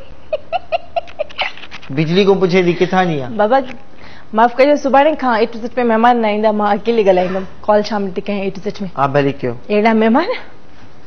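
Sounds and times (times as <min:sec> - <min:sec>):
woman laughing: 0:00.0 - 0:01.7.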